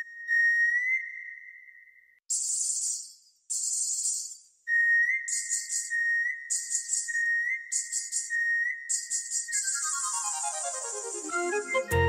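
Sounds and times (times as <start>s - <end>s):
high whistle-like melody: 9.5s - 12.0s.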